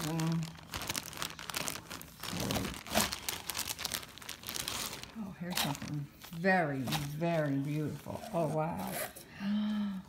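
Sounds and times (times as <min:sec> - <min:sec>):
plastic bags crinkling: 0:00.0 - 0:08.9.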